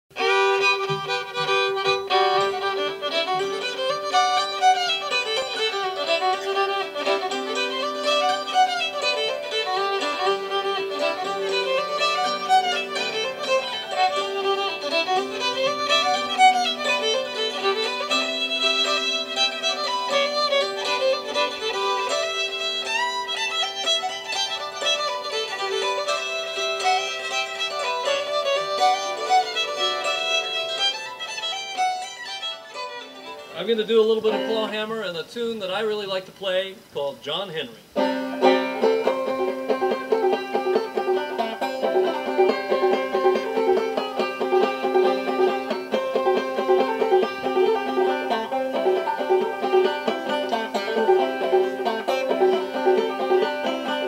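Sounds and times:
fiddle playing lively tune: 0:00.1 - 0:54.0.

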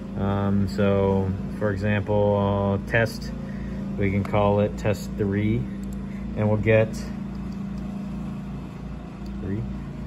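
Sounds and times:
equipment humming: 0:00.0 - 0:10.0.

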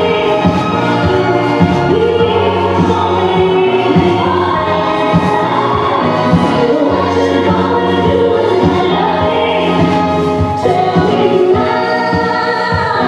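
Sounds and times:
dance music with singing: 0:00.0 - 0:13.0.

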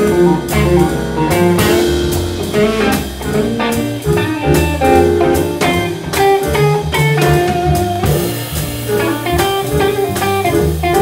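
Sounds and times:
drums: 0:00.0 - 0:11.0
electric guitar: 0:00.0 - 0:11.0
keyboard playing: 0:00.0 - 0:11.0
upright bass: 0:00.0 - 0:11.0.

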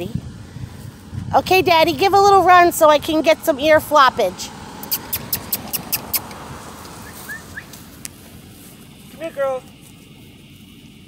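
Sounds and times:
footsteps running on grass: 0:07.0 - 0:11.0.

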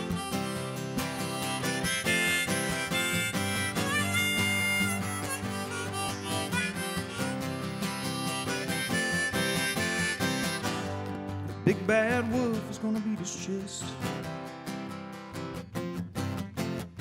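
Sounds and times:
harmonica solo: 0:00.0 - 0:11.5
strummed acoustic guitar: 0:00.0 - 0:17.0.

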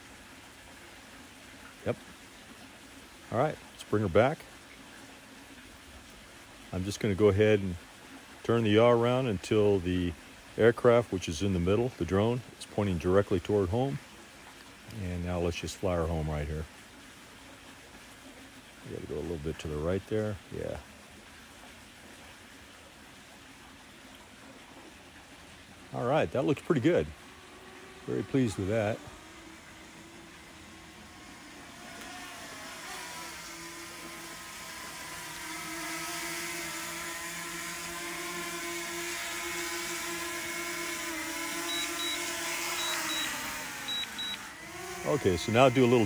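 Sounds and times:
faint steady hiss: 0:00.0 - 0:46.0
drone propellers whining: 0:26.3 - 0:46.0
quick double beeps: 0:42.8 - 0:43.3, 0:43.9 - 0:44.4.

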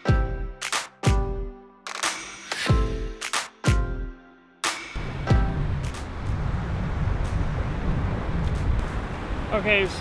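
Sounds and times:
wind rumbling on microphone: 0:05.0 - 0:10.0.

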